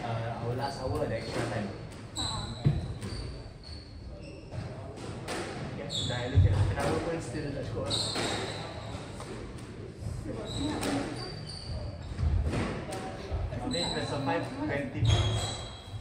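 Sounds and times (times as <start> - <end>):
shoes squeaking on wooden floor: 0.9 - 4.9, 5.9 - 9.2, 10.2 - 12.7, 13.4 - 16.0.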